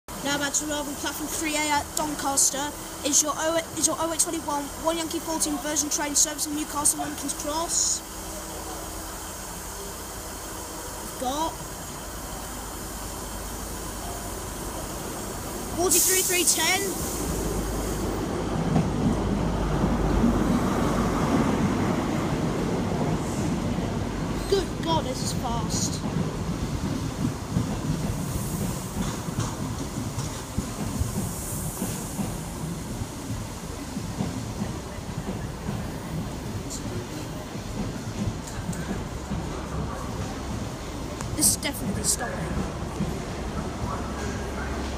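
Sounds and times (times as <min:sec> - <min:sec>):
railway platform hiss: 0:00.1 - 0:44.9
train wheels rumbling: 0:00.1 - 0:44.9.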